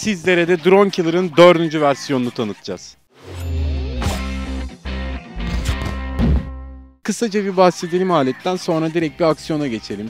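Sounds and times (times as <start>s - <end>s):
sharp percussive hits: 3.4s - 4.7s.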